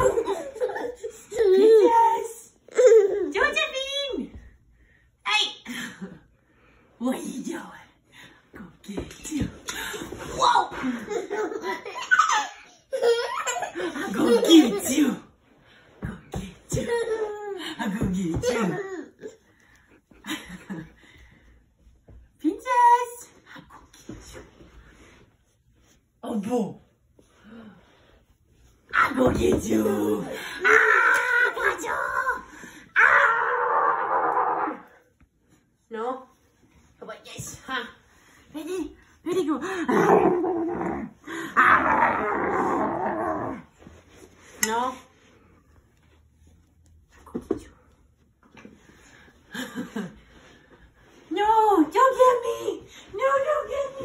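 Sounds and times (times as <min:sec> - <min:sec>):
woman playful growling: 0:39.9 - 0:43.7.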